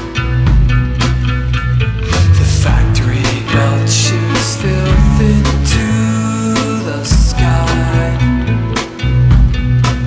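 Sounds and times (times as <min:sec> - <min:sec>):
bass: 0:00.0 - 0:10.0
electric guitar: 0:00.0 - 0:10.0
drum hits: 0:02.0 - 0:06.0, 0:06.6 - 0:07.8.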